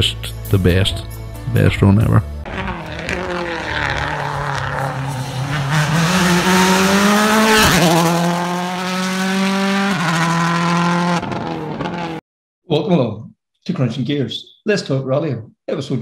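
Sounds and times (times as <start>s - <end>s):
rally car engine revving high: 2.4s - 12.2s.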